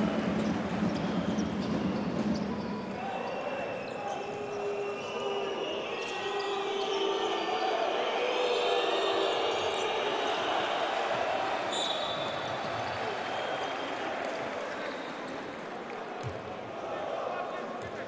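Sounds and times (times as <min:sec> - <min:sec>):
players' voices echoing: 0:02.2 - 0:18.0.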